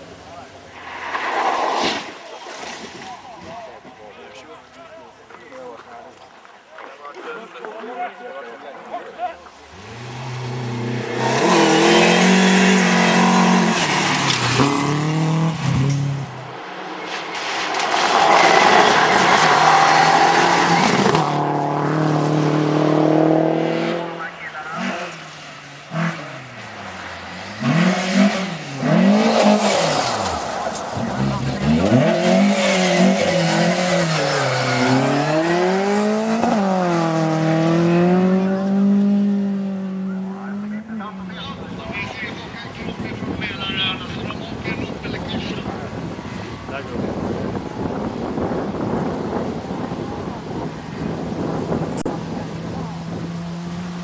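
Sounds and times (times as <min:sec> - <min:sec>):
rally car engines revving: 0:09.5 - 0:54.0.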